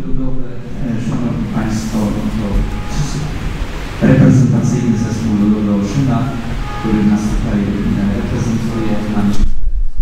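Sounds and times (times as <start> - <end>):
background hiss: 0.0 - 10.0
indistinct speech: 4.0 - 9.4.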